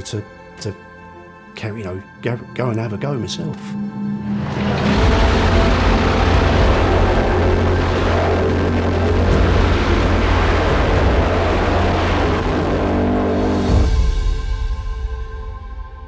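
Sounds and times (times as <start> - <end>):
dragster engines at full throttle: 4.3 - 14.0.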